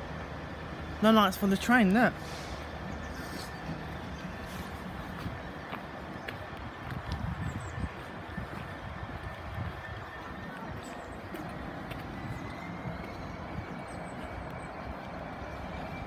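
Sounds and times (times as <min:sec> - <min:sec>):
train rumbling: 0:00.0 - 0:16.0.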